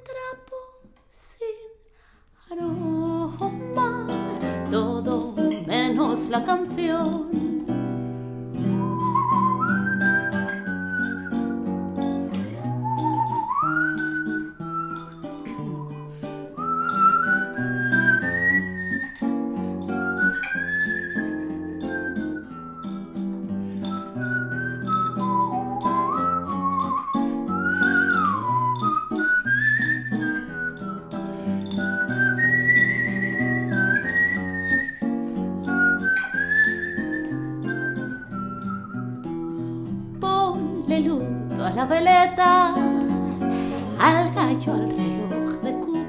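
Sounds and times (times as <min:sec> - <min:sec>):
classical guitar accompaniment: 0:02.5 - 0:46.0
high whistling melody: 0:08.6 - 0:40.1.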